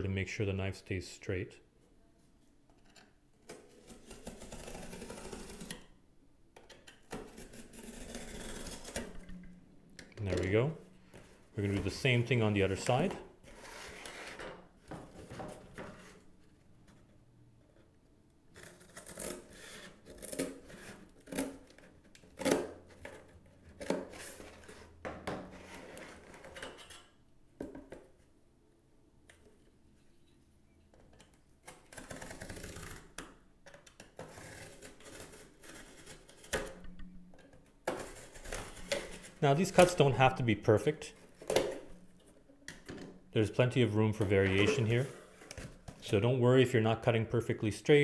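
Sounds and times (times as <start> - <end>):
box knife scoring cardboard: 3.5 - 5.8, 7.1 - 9.1.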